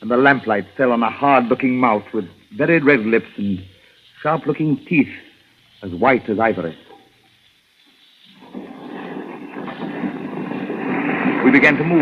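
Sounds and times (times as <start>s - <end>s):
horse-drawn carriage rumbling: 8.5s - 12.0s.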